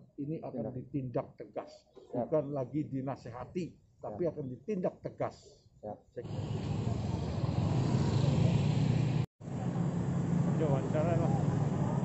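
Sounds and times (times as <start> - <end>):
car engines passing: 6.2 - 12.0
motorcycle engines passing: 6.2 - 12.0.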